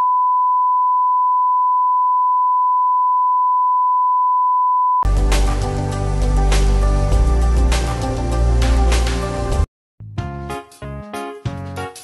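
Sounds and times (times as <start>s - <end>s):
music: 5.0s - 12.0s.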